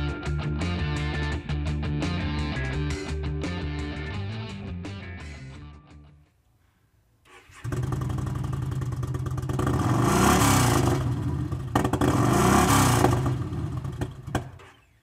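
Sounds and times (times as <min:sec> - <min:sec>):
motorcycle engine idling and revving: 0:07.4 - 0:15.0.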